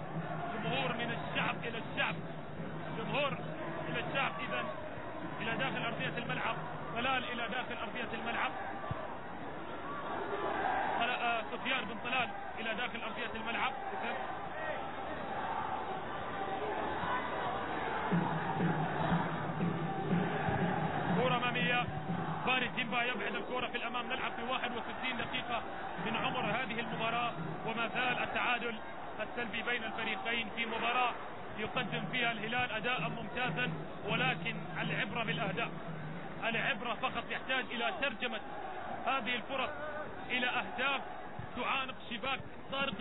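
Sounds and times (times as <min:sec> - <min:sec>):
stadium crowd din: 0:00.0 - 0:43.0.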